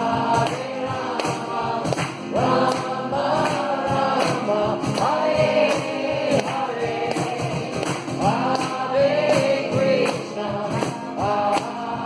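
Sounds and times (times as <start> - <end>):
hand drum: 0.0 - 12.0
strummed acoustic guitar: 0.0 - 12.0
voices singing a chant together: 0.0 - 12.0.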